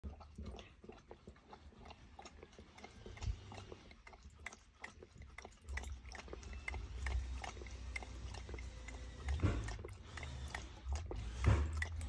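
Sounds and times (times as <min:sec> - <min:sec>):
animal lapping water from metal bowl: 0:00.0 - 0:12.0.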